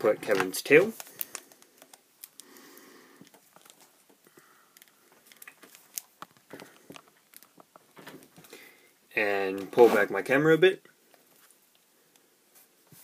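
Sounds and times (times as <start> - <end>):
light plastic rustling: 0.0 - 2.6, 3.2 - 8.7.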